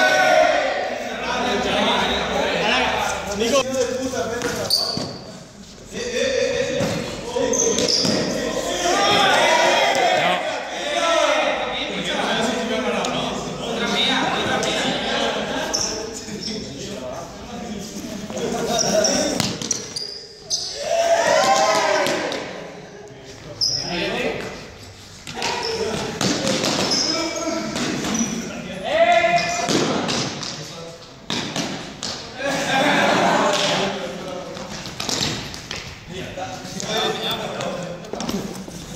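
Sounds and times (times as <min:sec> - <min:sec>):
people shouting and calling out: 0:00.0 - 0:03.9, 0:05.9 - 0:16.6, 0:20.4 - 0:22.8, 0:25.3 - 0:30.1
sneakers squeaking: 0:03.0 - 0:05.9, 0:06.5 - 0:09.5, 0:15.6 - 0:17.0, 0:17.8 - 0:21.5, 0:23.3 - 0:32.4
young people's voices echoing: 0:05.8 - 0:16.8.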